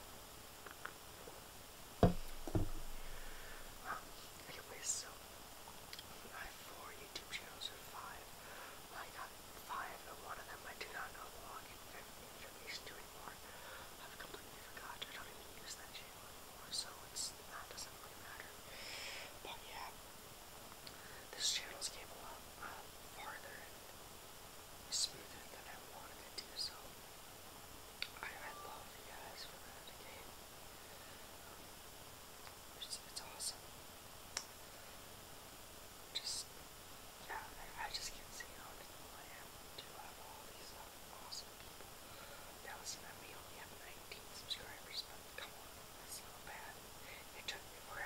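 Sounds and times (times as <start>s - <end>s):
person whispering: 2.0s - 5.2s, 6.0s - 20.0s, 20.9s - 23.8s, 24.9s - 26.9s, 28.0s - 30.3s, 32.8s - 33.6s, 36.2s - 36.5s, 37.2s - 41.5s, 42.6s - 48.0s.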